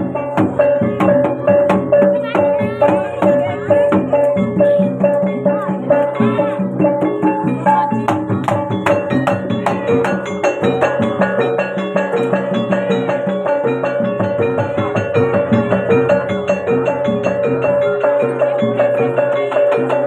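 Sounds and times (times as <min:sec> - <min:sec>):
drum strokes: 0:00.0 - 0:20.0
gamelan music: 0:00.0 - 0:20.0
ringing metallophone and gong notes: 0:00.0 - 0:20.0.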